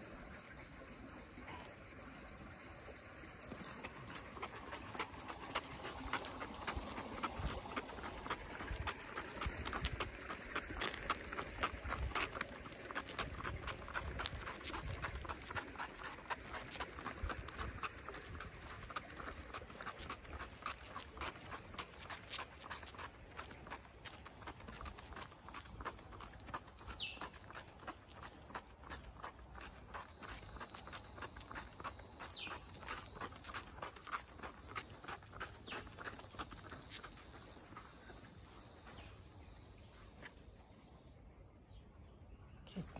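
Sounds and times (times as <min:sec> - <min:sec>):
dog paws pattering on asphalt: 0:02.8 - 0:40.8.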